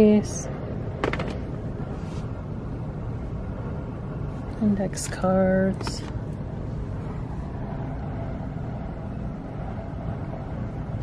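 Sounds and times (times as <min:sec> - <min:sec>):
faint steady hum: 0:00.0 - 0:11.0
low rumble of store background: 0:00.0 - 0:11.0.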